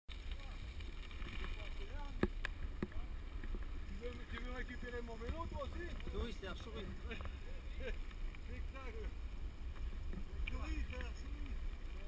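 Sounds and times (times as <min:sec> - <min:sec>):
bikes rolling on dirt track: 0:00.1 - 0:12.0
wind rumble: 0:00.1 - 0:12.0.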